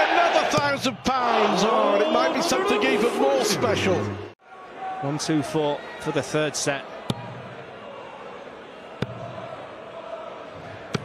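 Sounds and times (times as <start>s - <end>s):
murmur of crowd: 0.0s - 11.0s.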